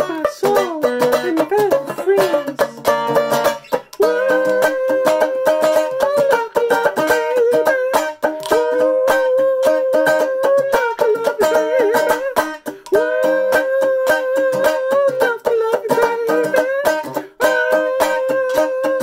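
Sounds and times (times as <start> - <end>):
banjo strummed and picked: 0.0 - 19.0
man singing without words: 0.0 - 19.0.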